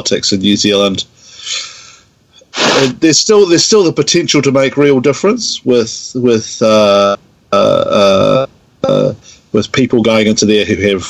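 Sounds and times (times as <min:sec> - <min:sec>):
person inhaling: 0:01.2 - 0:03.0, 0:09.2 - 0:09.5
person sneezing: 0:02.5 - 0:03.0.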